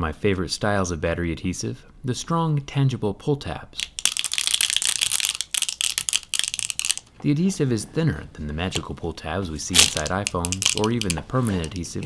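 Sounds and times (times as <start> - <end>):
adhesive tape crackling: 3.8 - 7.1, 9.7 - 12.0.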